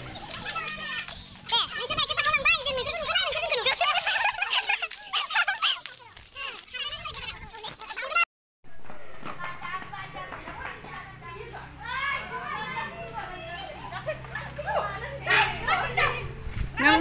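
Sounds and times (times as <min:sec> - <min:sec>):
children chattering and calling: 0:00.0 - 0:08.3, 0:09.0 - 0:17.0.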